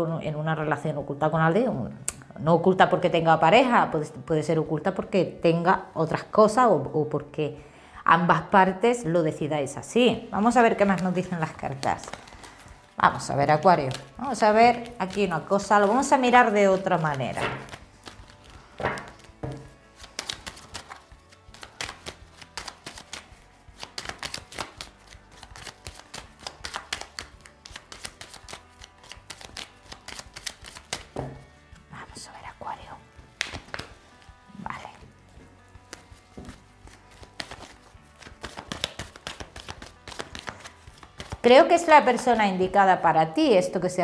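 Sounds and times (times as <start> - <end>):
cards being shuffled: 10.6 - 31.9, 33.2 - 42.4.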